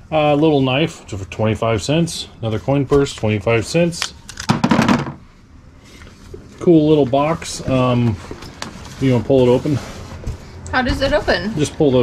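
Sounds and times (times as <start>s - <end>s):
objects clattering on a table: 4.4s - 5.2s.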